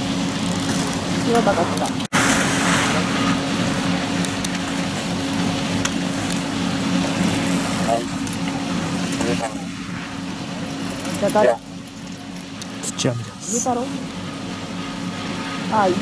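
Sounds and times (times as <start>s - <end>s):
low machine hum: 0.0s - 16.0s
outdoor hiss: 2.1s - 6.2s.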